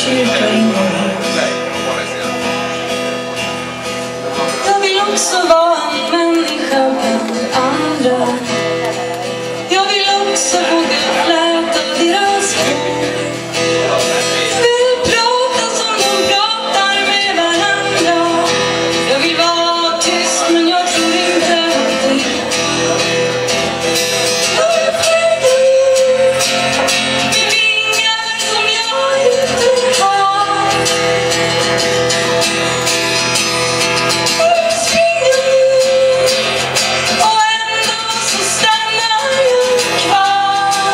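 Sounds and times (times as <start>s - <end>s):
woman singing slow song: 0.0s - 1.4s, 4.6s - 8.8s, 9.6s - 13.6s, 14.5s - 22.5s, 24.4s - 31.8s, 34.1s - 40.9s
acoustic guitar: 0.0s - 40.9s.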